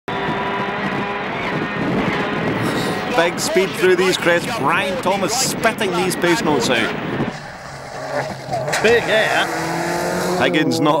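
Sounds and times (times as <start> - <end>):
rally car engine running hard: 0.1 - 11.0.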